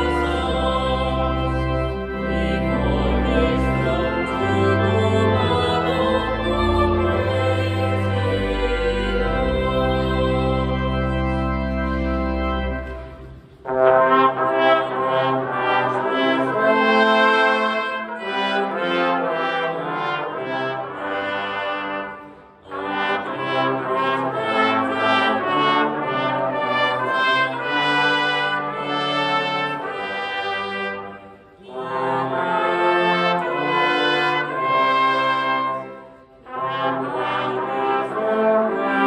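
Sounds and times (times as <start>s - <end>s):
brass ensemble playing a hymn: 0.0s - 39.0s.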